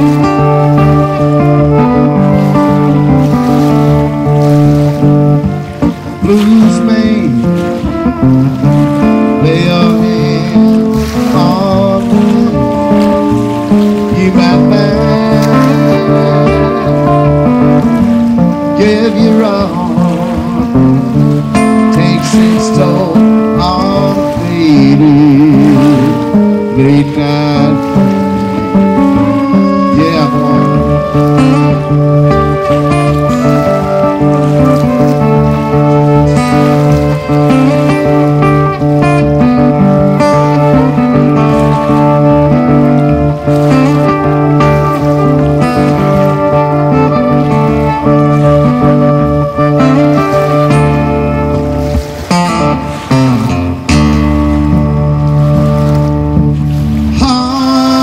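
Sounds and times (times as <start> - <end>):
fiddle playing long bowed notes: 0.0 - 57.5
acoustic guitar strumming: 0.0 - 58.0.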